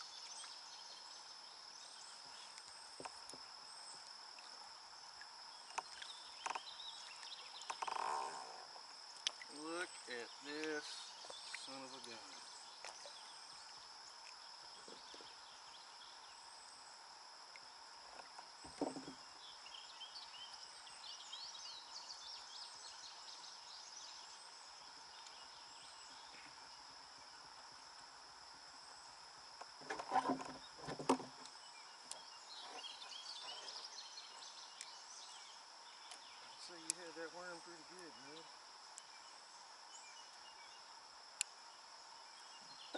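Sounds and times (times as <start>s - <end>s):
high insect drone: 0.0s - 42.9s
knocks on plastic kayak: 18.6s - 19.2s.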